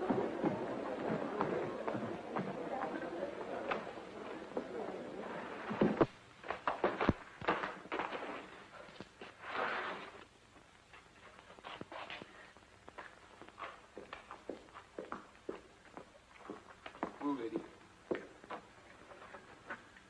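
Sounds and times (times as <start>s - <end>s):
scraping on ground: 5.4s - 10.3s
light knocks and steps: 10.6s - 20.0s.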